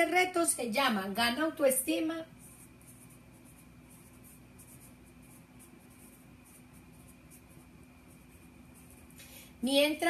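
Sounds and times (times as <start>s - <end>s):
low electrical hum: 0.0s - 10.0s
pen scratching on paper: 2.3s - 9.2s.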